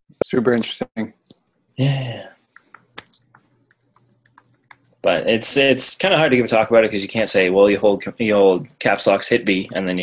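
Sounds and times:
typing on computer keyboard: 2.7s - 5.0s.

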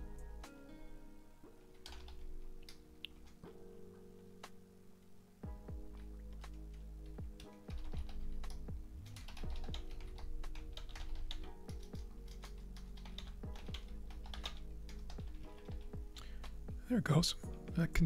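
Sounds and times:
quiet background music: 0.0s - 18.0s
computer keyboard typing: 1.7s - 3.4s, 5.9s - 16.1s.

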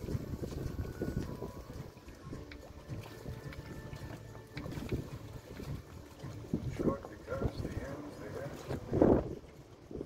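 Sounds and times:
choppy water: 0.0s - 10.0s
wind rumble: 0.0s - 10.0s.

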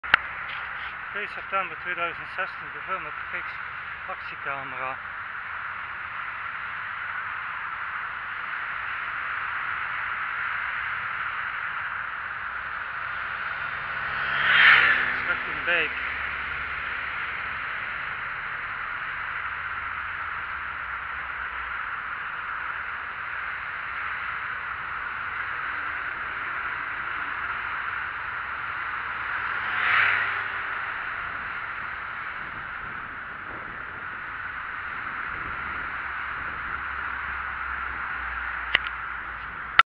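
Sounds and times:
bicycle tyres on asphalt: 0.0s - 39.8s
moped passing: 0.0s - 39.8s
wind rushing: 29.8s - 38.0s.

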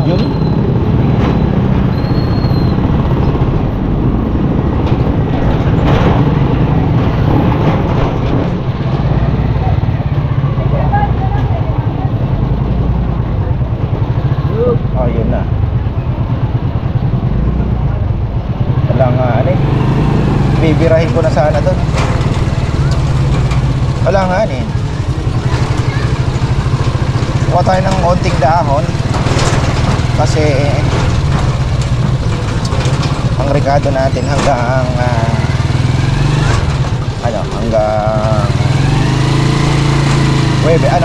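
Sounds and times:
motorcycle engine rumble: 0.0s - 41.0s
voices of passers-by: 0.0s - 41.0s.

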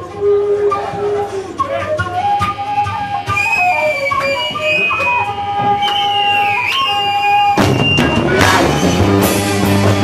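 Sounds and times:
flute holding a note: 0.0s - 8.7s
rock band playing: 2.9s - 10.0s.

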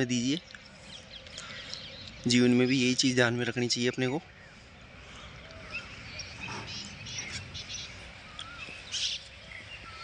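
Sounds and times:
birds chirping: 0.0s - 10.0s
low background noise: 0.0s - 10.0s.

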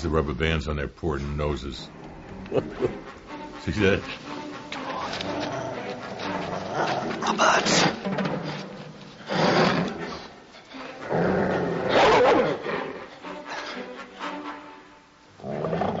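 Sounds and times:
orchestral score: 1.9s - 15.8s
dogs snarling and growling: 4.8s - 13.9s, 15.4s - 16.0s.

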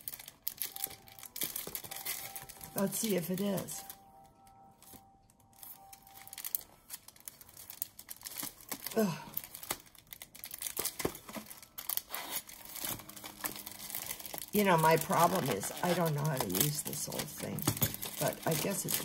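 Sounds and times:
plastic packaging crinkling and tearing: 0.0s - 19.0s.

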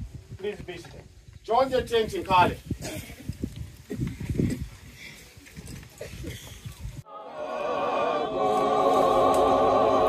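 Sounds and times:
choir singing: 7.0s - 10.0s.

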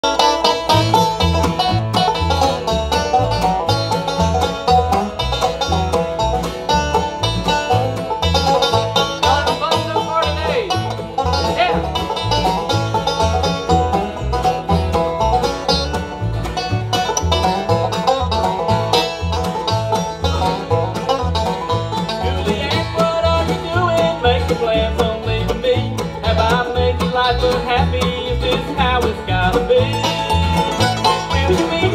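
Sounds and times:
acoustic guitar picking: 0.0s - 31.9s
banjo: 0.0s - 31.9s
mandolin: 0.0s - 31.9s
upright bass: 0.0s - 31.9s.

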